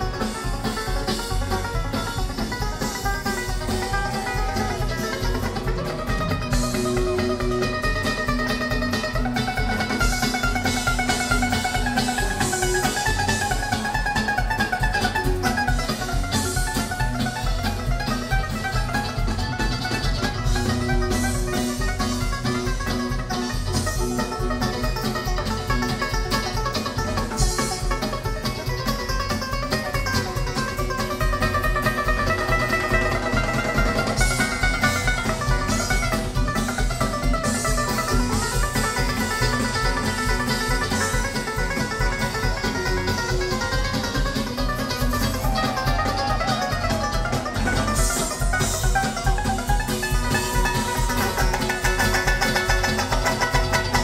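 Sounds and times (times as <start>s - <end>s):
acoustic guitar: 0.0s - 54.0s
banjo: 0.0s - 54.0s
drum beat: 0.0s - 54.0s
electric bass: 0.0s - 54.0s
mandolin: 0.0s - 54.0s.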